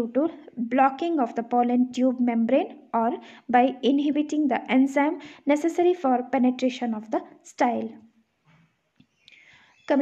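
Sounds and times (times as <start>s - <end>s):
woman speaking: 0.0s - 8.1s, 9.8s - 10.0s.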